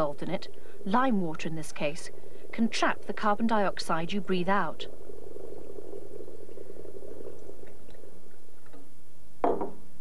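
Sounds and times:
liquid bubbling with low rattle: 4.5s - 9.9s.

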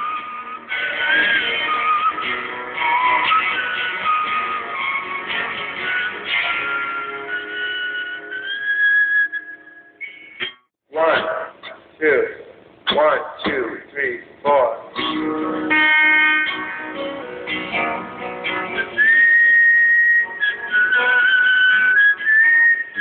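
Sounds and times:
live band playing guitars: 0.0s - 9.3s, 15.0s - 23.0s.

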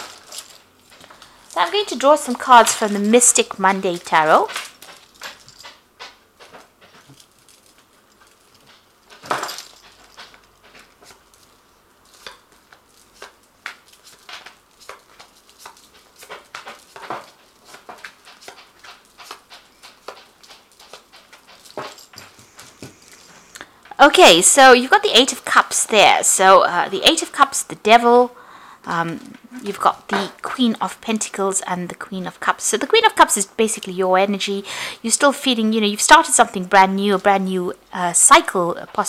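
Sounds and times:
cards being shuffled: 10.2s - 21.1s.

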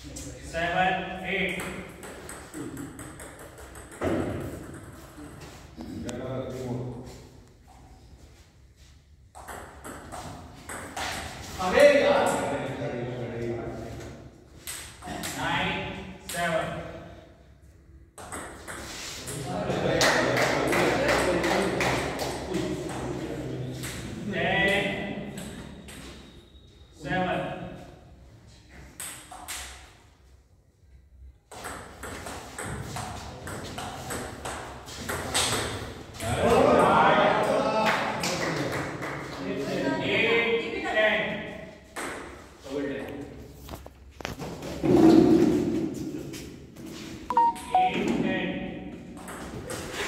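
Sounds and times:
voices echoing in a hall: 0.0s - 2.8s, 4.2s - 8.5s, 11.3s - 17.6s, 18.9s - 28.6s, 32.8s - 43.6s, 44.3s - 50.0s.

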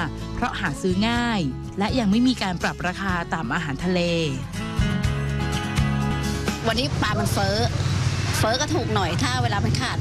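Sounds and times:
woman talking: 0.0s - 4.5s, 6.6s - 7.8s, 8.4s - 10.0s.

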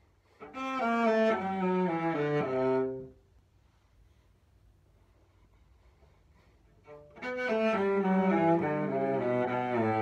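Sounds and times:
cello bowed notes: 0.4s - 3.2s, 6.8s - 10.0s.

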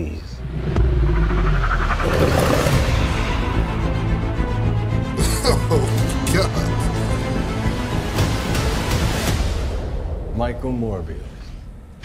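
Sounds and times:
deep steady rumble: 0.2s - 4.0s
rising hissing whoosh: 0.4s - 3.4s.

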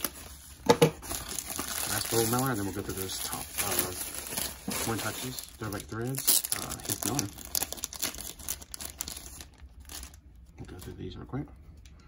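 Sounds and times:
plastic mailer crinkling: 0.0s - 11.1s.

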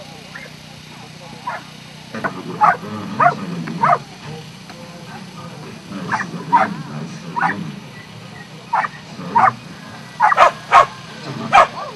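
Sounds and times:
dog barking: 1.4s - 4.1s, 6.1s - 6.8s, 7.4s - 7.6s, 8.7s - 9.6s, 10.2s - 11.9s.

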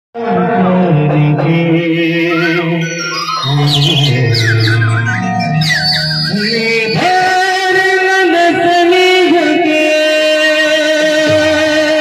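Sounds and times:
electronic keyboard melody: 1.9s - 10.6s
low drone: 2.4s - 8.0s.

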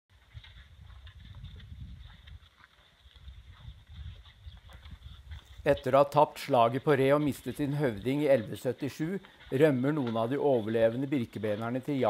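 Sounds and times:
wind on microphone: 0.1s - 5.9s
light ticks and crunches: 0.2s - 12.0s.

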